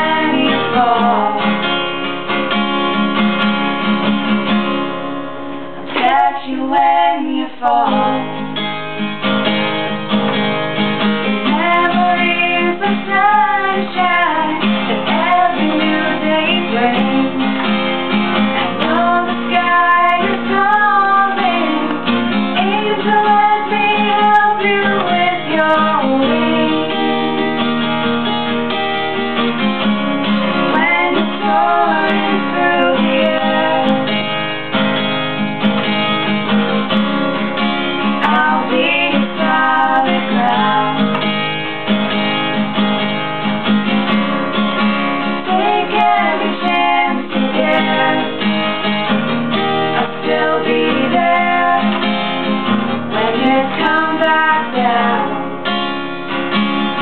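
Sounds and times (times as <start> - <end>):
women singing: 0.0 - 1.8, 5.8 - 8.6, 11.4 - 17.8, 18.4 - 27.4, 30.6 - 34.2, 38.2 - 41.2, 45.3 - 48.8, 49.8 - 52.5, 53.1 - 55.6
acoustic guitar strumming: 0.0 - 57.0.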